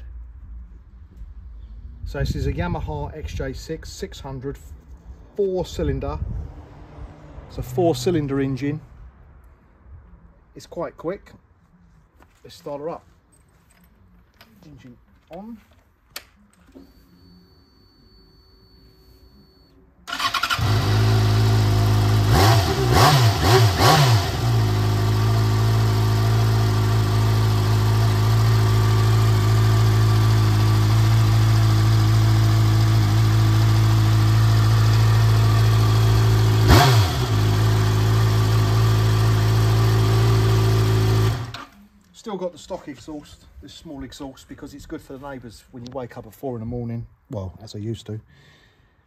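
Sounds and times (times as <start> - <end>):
motorcycle engine starting: 20.0 - 41.8
motorcycle engine idling: 24.6 - 41.6.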